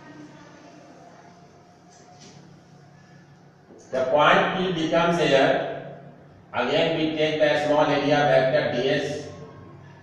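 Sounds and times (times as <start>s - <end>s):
steady low hum: 0.0s - 10.0s
marker on a whiteboard: 1.2s - 5.8s
man talking: 3.9s - 5.9s, 6.5s - 9.4s.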